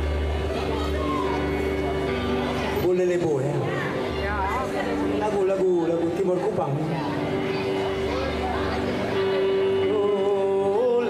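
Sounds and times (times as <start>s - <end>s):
electric guitar chord: 0.0s - 11.0s.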